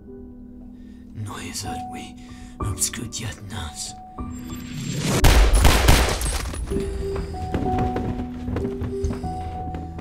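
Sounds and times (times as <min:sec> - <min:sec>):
sustained film score notes: 0:02.2 - 0:10.0
rapid gunshots: 0:05.2 - 0:06.2.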